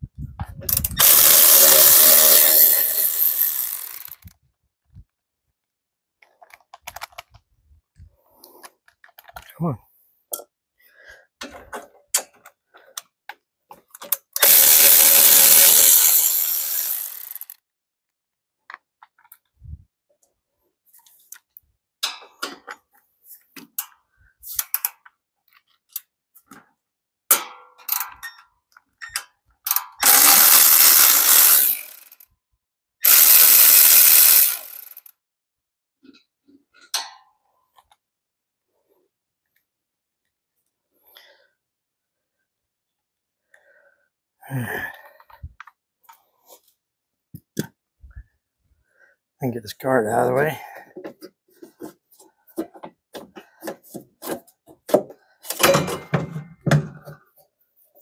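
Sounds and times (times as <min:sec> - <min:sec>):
electric ratchet spinning: 0:00.7 - 0:04.3, 0:14.4 - 0:17.6, 0:29.7 - 0:32.3, 0:33.0 - 0:35.1
metallic clicks of tools: 0:27.3 - 0:32.3, 0:36.7 - 0:37.3.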